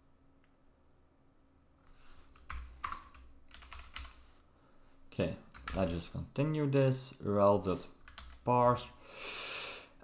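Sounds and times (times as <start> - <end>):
keyboard typing: 2.3 - 4.2, 5.5 - 6.0, 8.0 - 8.6.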